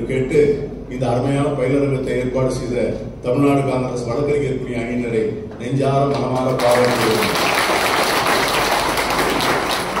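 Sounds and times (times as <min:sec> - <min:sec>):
audience clapping: 0:06.1 - 0:10.0.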